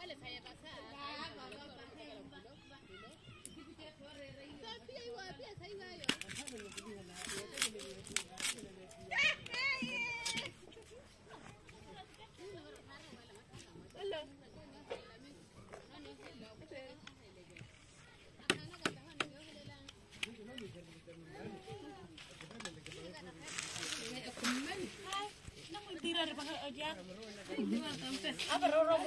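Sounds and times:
people talking quietly: 0.0 - 29.0
rustling noise: 19.3 - 29.0.

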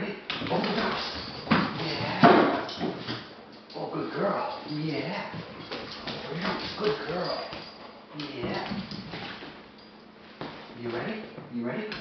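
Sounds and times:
man speaking: 0.0 - 2.4, 3.7 - 5.4, 6.2 - 8.9, 10.8 - 12.0.

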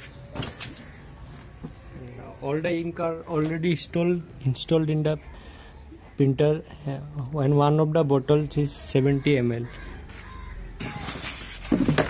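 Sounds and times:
packaging rustling scrape: 10.2 - 12.0.

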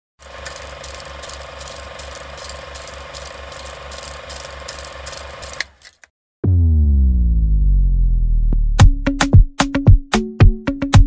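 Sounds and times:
low pulse: 6.4 - 9.0.

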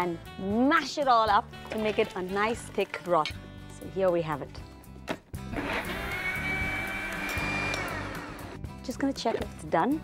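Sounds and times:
blender motor whining: 5.5 - 8.6.

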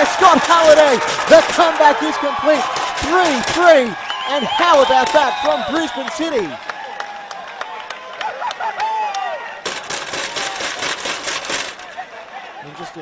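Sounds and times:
people shouting: 0.0 - 6.5
crowd noise: 0.0 - 13.0
people clapping: 0.0 - 13.0.

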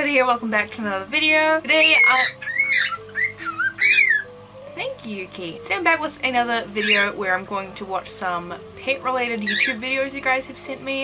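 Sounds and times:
soft background music: 0.0 - 11.0
cockatiel chirping: 1.7 - 4.3, 6.8 - 7.2, 9.4 - 9.8.

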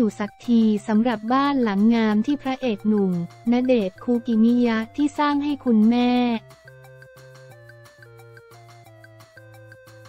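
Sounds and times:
narrator speaking: 0.0 - 6.4
background music with steady beat: 0.0 - 10.0.

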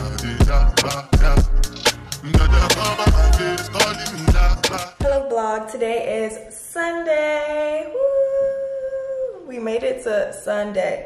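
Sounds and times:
woman speaking sing-song: 5.0 - 11.0.

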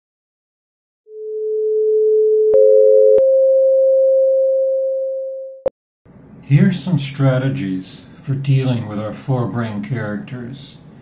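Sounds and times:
electronic sine tones: 1.1 - 5.7.

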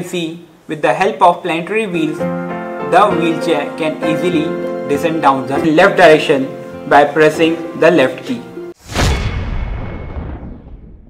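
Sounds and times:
deep cinematic boom hit: 8.8 - 11.0.

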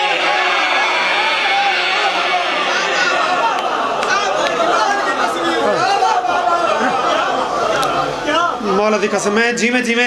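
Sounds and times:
men talking: 3.0 - 10.0.

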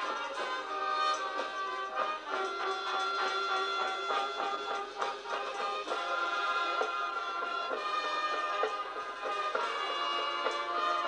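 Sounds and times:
marching band playing: 0.0 - 11.0.

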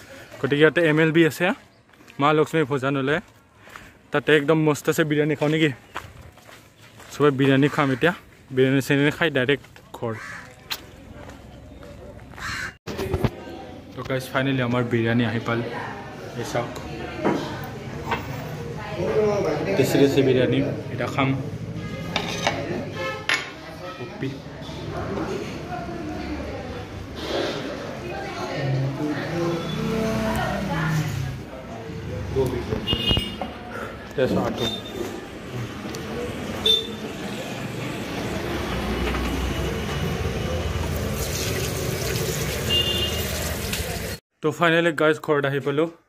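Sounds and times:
dishes knocking and clinking: 23.3 - 23.6
hand being rinsed: 40.8 - 44.2
water running into washbasin: 40.8 - 44.2.

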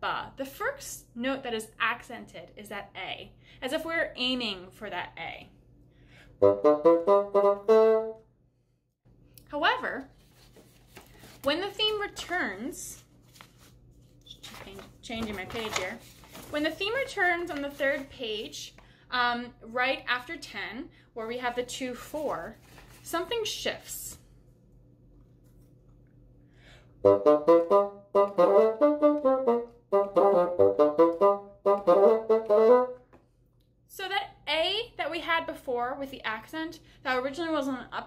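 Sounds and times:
faint room hum: 0.0 - 30.6, 32.8 - 38.0
solo bassoon playing: 6.4 - 8.3, 27.0 - 33.1
person speaking: 14.3 - 24.2.

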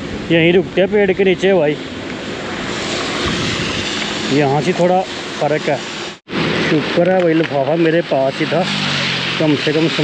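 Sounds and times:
tyres hissing on wet road: 1.4 - 10.0.

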